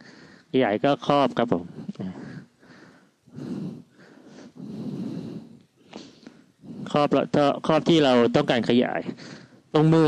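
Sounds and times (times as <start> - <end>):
person breathing: 0.0 - 0.5, 1.6 - 7.0, 9.1 - 9.7.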